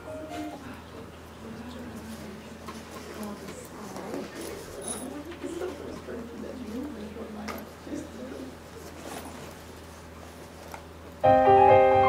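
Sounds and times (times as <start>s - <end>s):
low electrical hum: 0.0s - 12.0s
soft murmur of voice: 0.2s - 9.5s.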